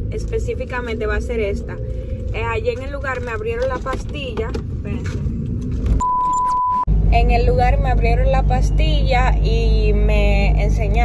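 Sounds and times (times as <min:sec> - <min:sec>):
car cabin rumble: 0:00.0 - 0:11.0
censor bleep: 0:06.0 - 0:06.9.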